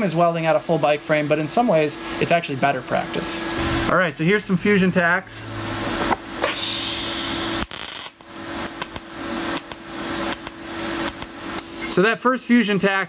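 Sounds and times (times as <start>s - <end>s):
steady hum: 0.0s - 13.0s
welding arc hissing: 6.4s - 11.8s.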